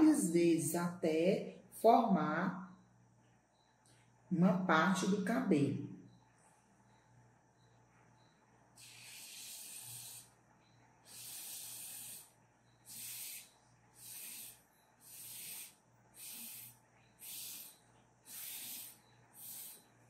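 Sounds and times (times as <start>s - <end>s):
breath puffs through a straw: 8.8s - 10.4s, 11.0s - 20.0s.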